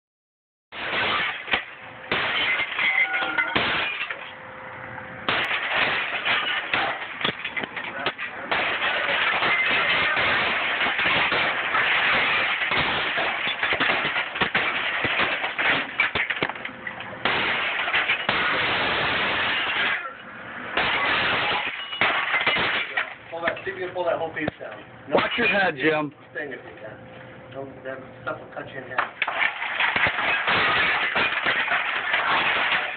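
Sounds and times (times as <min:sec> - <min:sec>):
falling glass shards clattering: 0:00.8 - 0:04.4, 0:05.3 - 0:20.2, 0:20.8 - 0:23.9, 0:25.1 - 0:25.8, 0:29.0 - 0:32.9
glass cracking: 0:00.8 - 0:04.4, 0:05.3 - 0:20.2, 0:20.8 - 0:25.8, 0:29.0 - 0:32.9.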